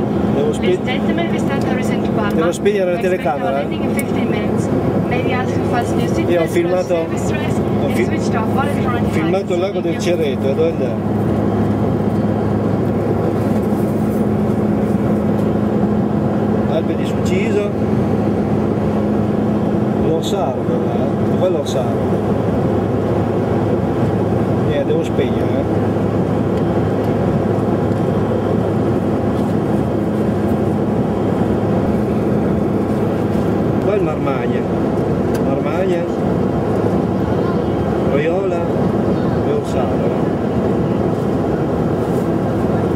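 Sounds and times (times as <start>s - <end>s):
airliner cabin drone: 0.0s - 42.9s.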